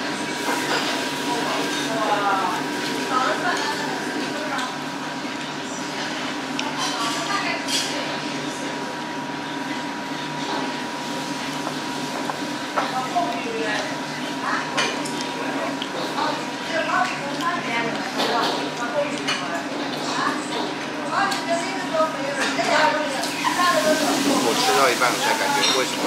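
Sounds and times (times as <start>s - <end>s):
voices: 1.2s - 4.9s, 12.8s - 26.0s
dishes and cutlery clinking: 25.4s - 26.0s.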